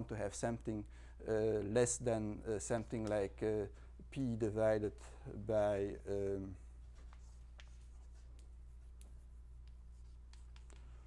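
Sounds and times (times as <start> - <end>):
steady low hum: 0.0 - 11.0
chalk tapping and scratching: 6.9 - 11.0.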